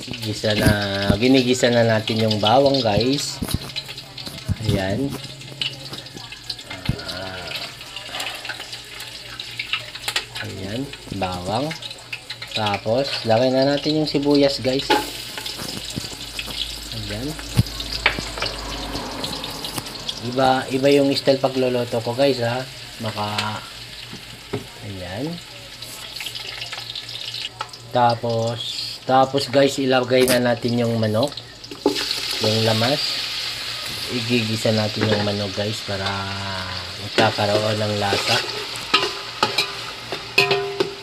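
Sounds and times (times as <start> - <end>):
garlic sizzling in hot oil: 0.0 - 41.0
low hum: 16.5 - 21.0.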